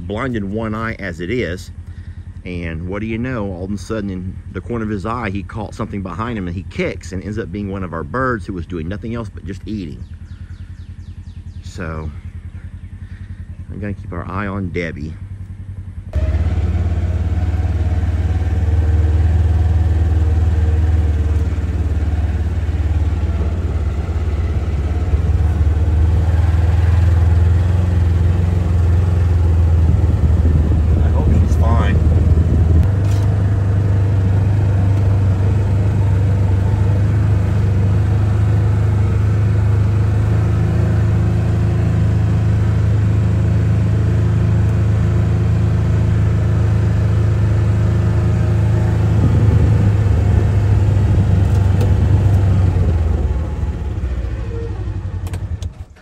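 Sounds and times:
vehicle engine droning: 0.0s - 56.0s.

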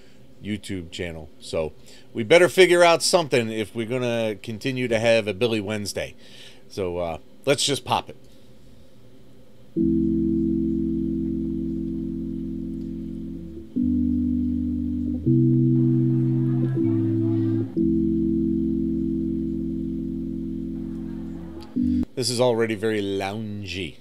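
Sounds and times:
slow keyboard chords: 9.8s - 22.2s.

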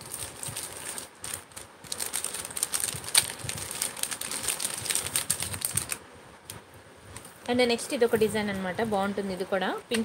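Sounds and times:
plastic pouches rustling: 0.0s - 6.0s.

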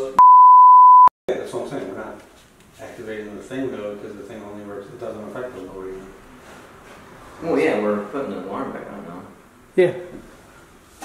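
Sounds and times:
censor bleep: 0.2s - 1.1s
men talking: 1.3s - 6.2s, 7.4s - 10.2s.

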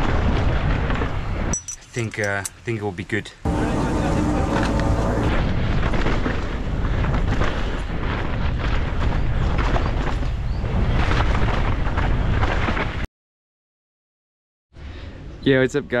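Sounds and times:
wind rumble on microphone: 0.0s - 1.6s, 3.5s - 13.1s.

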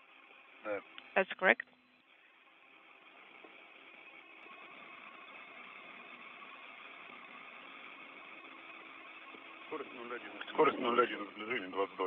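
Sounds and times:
radio channel hiss: 0.0s - 12.0s
faint low hum: 0.1s - 8.3s.

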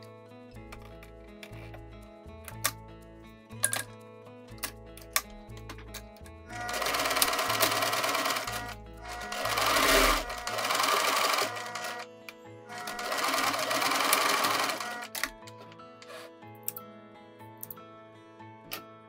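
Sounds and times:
sewing machine stitching: 6.5s - 12.0s, 12.7s - 15.2s.

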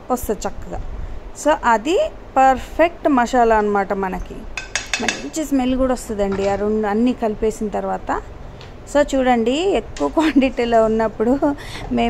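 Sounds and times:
woman speaking: 0.0s - 0.8s, 1.4s - 8.3s, 8.9s - 12.0s.

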